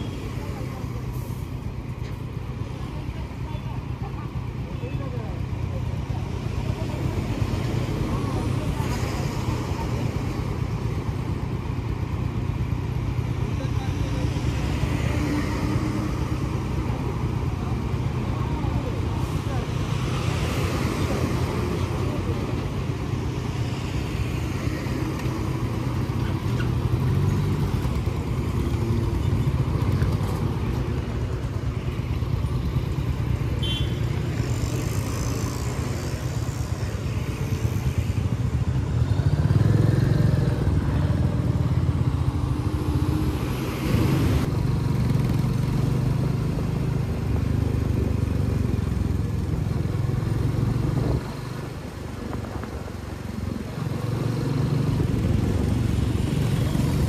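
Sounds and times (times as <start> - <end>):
city traffic: 0.0 - 57.0
motorcycle engines running: 0.0 - 57.0.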